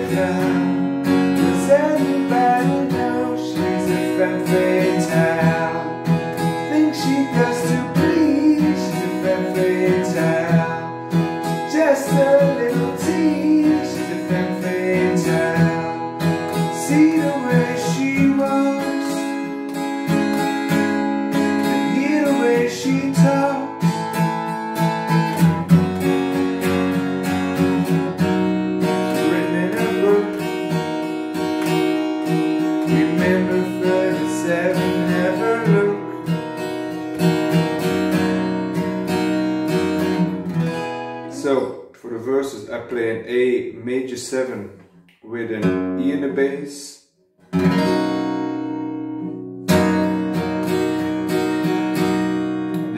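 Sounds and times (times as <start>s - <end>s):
acoustic guitar strumming: 0.0s - 41.9s, 44.9s - 46.6s, 47.4s - 52.9s.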